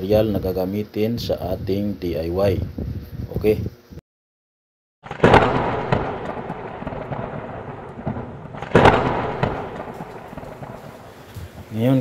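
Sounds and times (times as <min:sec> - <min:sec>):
loud bangs with crackling tail: 0:05.0 - 0:12.0.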